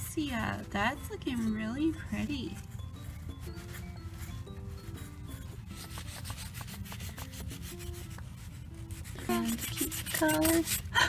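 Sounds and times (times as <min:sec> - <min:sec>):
background music: 0:00.0 - 0:11.0
markers scribbling on paper: 0:00.2 - 0:11.0.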